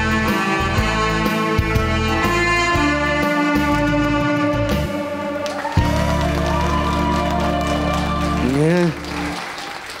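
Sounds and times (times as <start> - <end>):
saxophone with backing track: 0.0 - 9.2
applause: 5.4 - 10.0.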